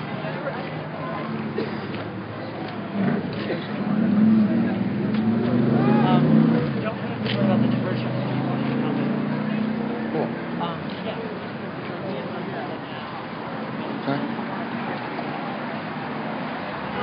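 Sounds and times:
people's voices: 0:00.0 - 0:17.0.

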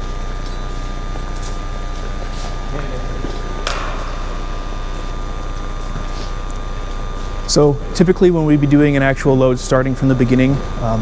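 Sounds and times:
faint high whine: 0:00.0 - 0:11.0
steady equipment hum: 0:00.0 - 0:11.0.

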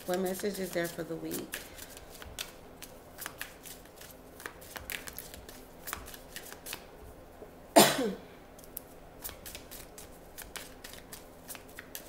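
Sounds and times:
cards being shuffled: 0:00.0 - 0:06.9, 0:08.6 - 0:12.0.

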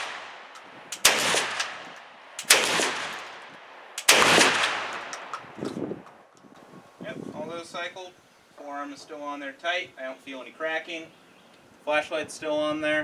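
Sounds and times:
shotgun shots with echo: 0:00.0 - 0:03.4, 0:04.0 - 0:05.3.

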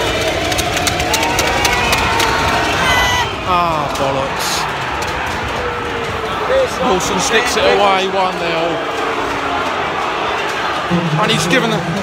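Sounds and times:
sharp claps: 0:00.0 - 0:02.9
stadium crowd cheering and shouting: 0:00.0 - 0:12.0.

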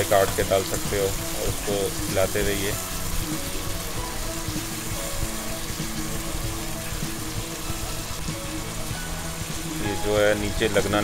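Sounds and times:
faint background music: 0:00.0 - 0:11.0
vegetables sizzling in hot oil: 0:00.0 - 0:11.0.

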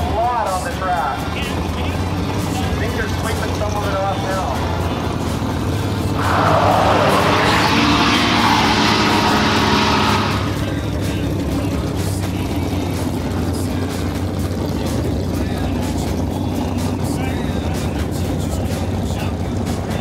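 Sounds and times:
announcer's voice: 0:00.0 - 0:05.1, 0:06.2 - 0:10.7
race car engine: 0:00.0 - 0:20.0.

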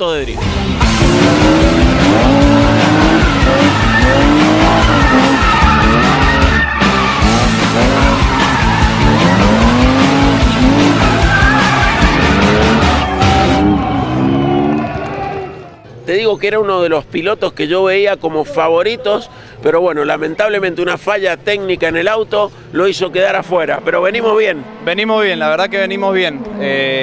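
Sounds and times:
car engines revving: 0:00.4 - 0:16.2, 0:21.7 - 0:27.0
music with steady beat: 0:00.8 - 0:13.7
tyre squeal: 0:02.6 - 0:14.5.

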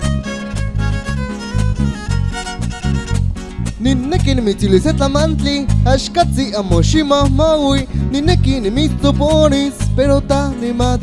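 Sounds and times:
violin melody: 0:00.0 - 0:05.1
electric bass: 0:00.0 - 0:11.0
strummed guitar: 0:00.0 - 0:11.0
man singing: 0:03.8 - 0:11.0.

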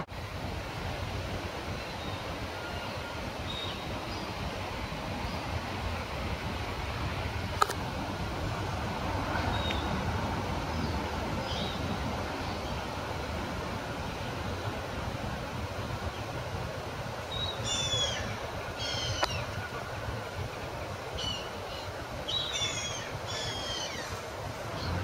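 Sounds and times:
birds chirping: 0:01.7 - 0:05.8, 0:08.6 - 0:13.0, 0:17.2 - 0:25.0.

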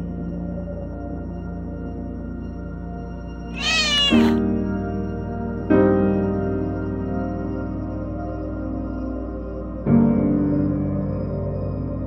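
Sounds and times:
soft ambient music: 0:00.0 - 0:12.0
cat meowing: 0:03.5 - 0:04.4.

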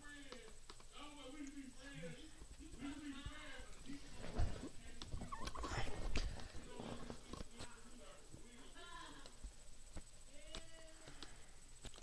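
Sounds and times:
sharp clicks: 0:00.2 - 0:01.6.

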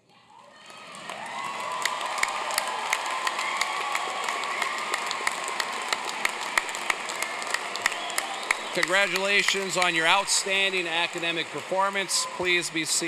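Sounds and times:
large audience applauding: 0:00.5 - 0:13.0.

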